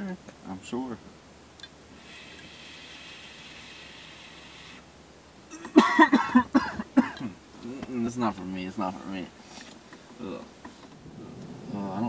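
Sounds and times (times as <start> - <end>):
vape draw hiss: 2.0 - 4.9
harsh coughing: 5.5 - 7.4.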